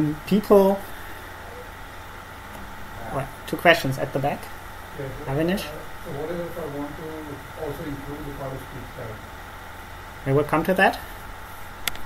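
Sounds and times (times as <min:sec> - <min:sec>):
low background hum and hiss: 0:00.0 - 0:12.0.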